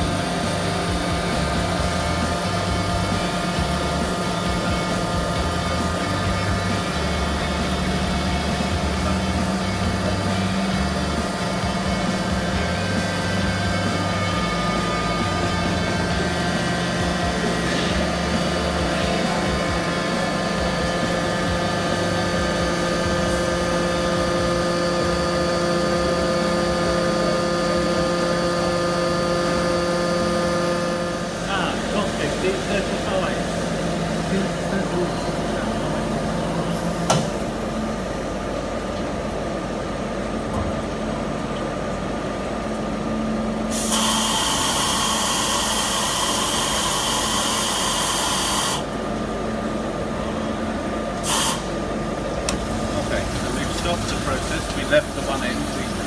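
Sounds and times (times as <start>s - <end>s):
drilling machine humming: 0.0s - 56.0s.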